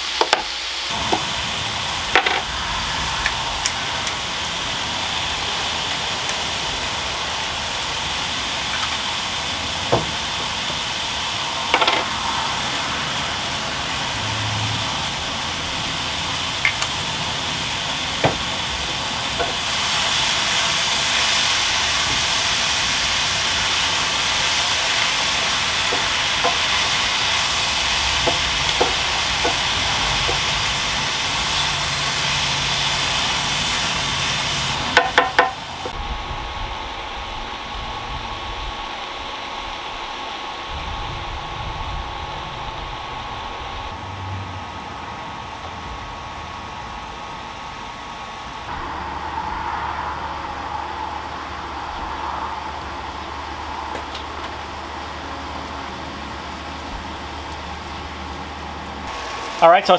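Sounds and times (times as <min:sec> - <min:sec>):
vegetables sizzling in a skillet: 0:00.0 - 0:59.9.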